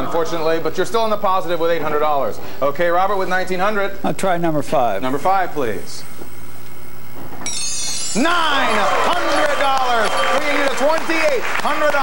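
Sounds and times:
bright electronic chime: 7.4 - 8.8.

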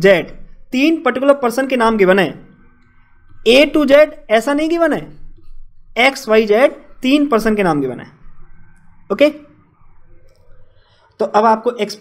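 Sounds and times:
person speaking: 0.0 - 12.0.

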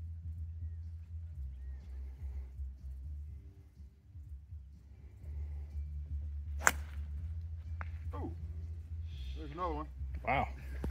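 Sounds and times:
golf driver striking ball: 6.6 - 7.0.

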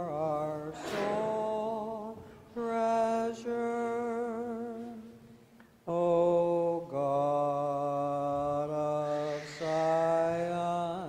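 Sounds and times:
person chanting long held notes: 8.7 - 11.0.

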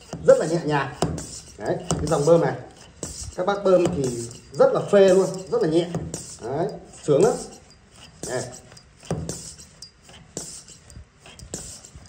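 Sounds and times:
hand pump knocking: 0.0 - 12.0
short air hiss: 11.5 - 12.0.

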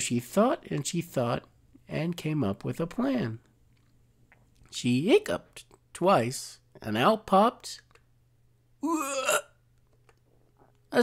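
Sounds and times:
faint steady hum: 0.0 - 11.0
person's short pitched vocal sound: 8.8 - 9.5.

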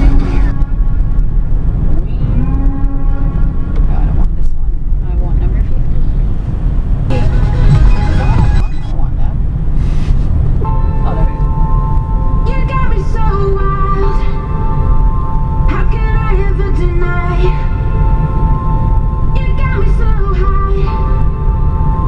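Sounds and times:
car radio music: 0.0 - 3.0, 7.1 - 22.0
car road and engine rumble: 0.0 - 22.0.

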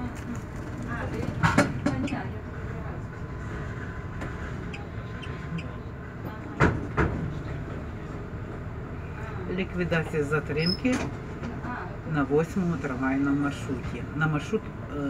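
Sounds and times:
tram rumble and hum: 0.0 - 15.0.

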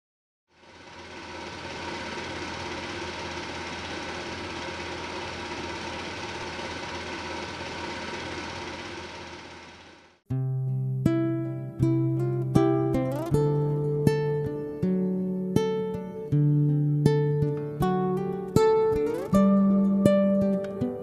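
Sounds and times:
machine running with faint hum: 0.5 - 10.2.

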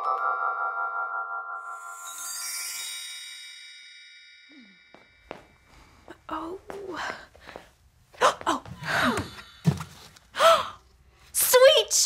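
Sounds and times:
woman gasping: 5.7 - 9.7, 10.3 - 10.9.

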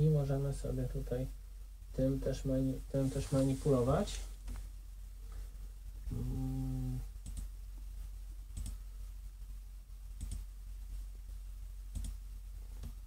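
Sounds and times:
computer mouse clicks: 7.2 - 7.5, 8.5 - 8.8, 10.2 - 10.5, 11.9 - 12.2.

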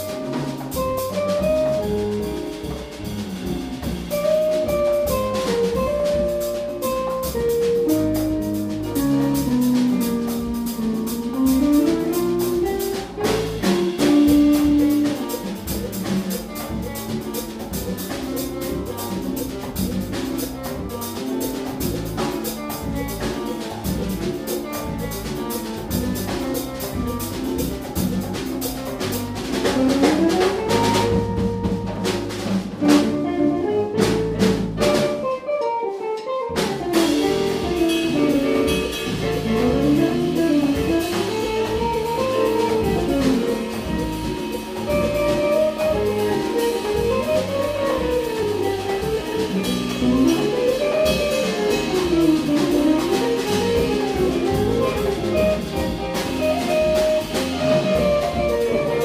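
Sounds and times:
latin jazz band playing: 0.0 - 59.0.

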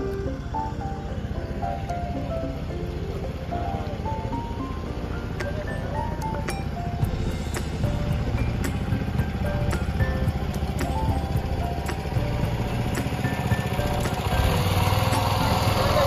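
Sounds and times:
background music of short notes: 0.0 - 16.0
small boat motor running: 0.0 - 16.0.

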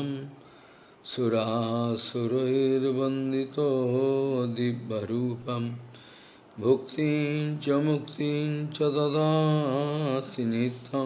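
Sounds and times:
man chanting: 0.0 - 0.4, 1.0 - 5.9, 6.6 - 11.0.

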